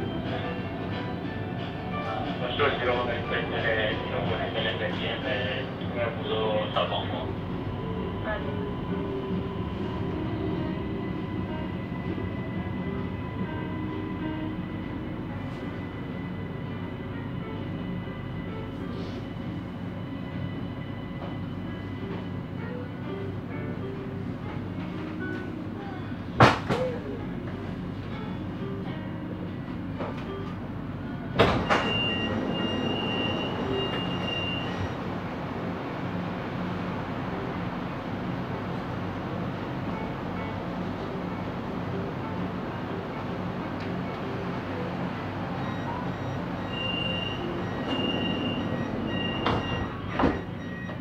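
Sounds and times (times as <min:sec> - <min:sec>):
metro train rumble: 0:00.0 - 0:51.0.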